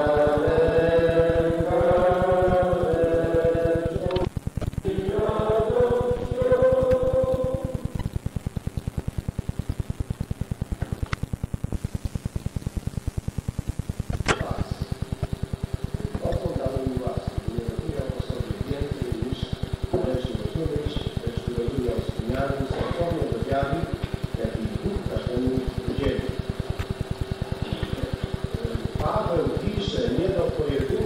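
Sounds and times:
voices: 0.0s - 8.0s, 14.3s - 31.0s
group singing on old tape: 0.0s - 9.8s, 14.2s - 31.0s
low pulsing recording noise: 0.0s - 31.0s
sharp click: 14.1s - 14.7s.

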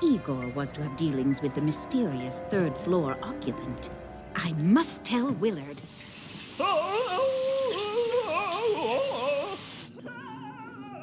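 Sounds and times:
shower water spraying: 5.8s - 9.9s
person singing: 6.6s - 11.0s.

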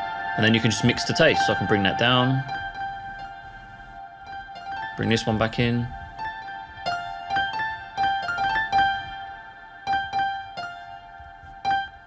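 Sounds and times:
slow piano melody with reverb: 0.0s - 12.0s.

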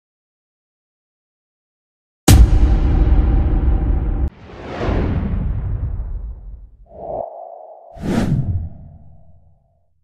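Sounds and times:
whoosh: 4.3s - 9.4s
swish: 6.9s - 9.4s.

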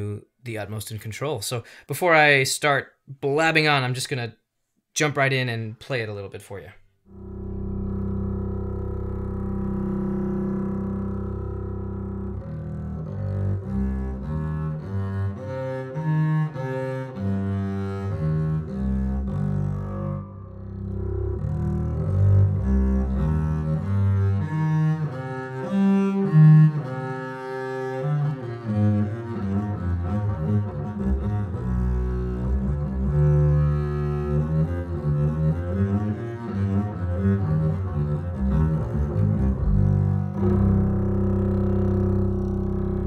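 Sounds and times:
bowed double bass: 7.1s - 43.0s.

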